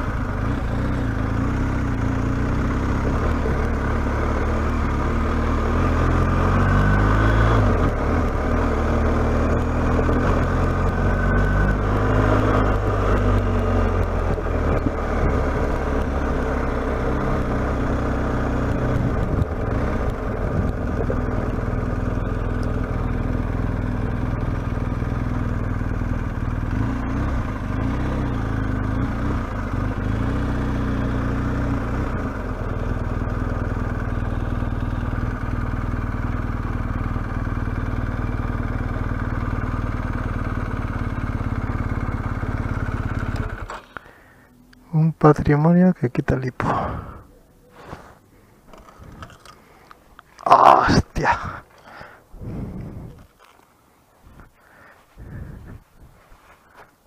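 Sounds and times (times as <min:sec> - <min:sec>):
motorcycle engine running: 0:00.0 - 0:45.1, 0:46.6 - 0:57.0
wind noise on microphone: 0:52.3 - 0:53.3, 0:55.2 - 0:56.3.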